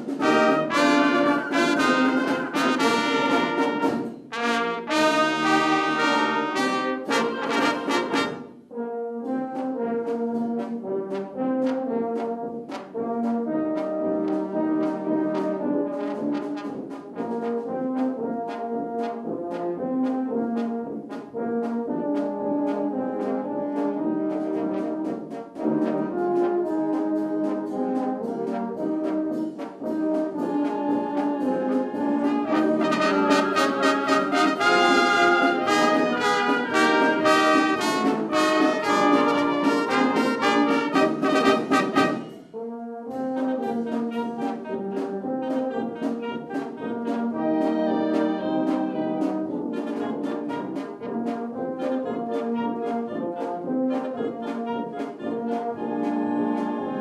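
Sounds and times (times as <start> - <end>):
wind band playing: 0.0 - 57.0.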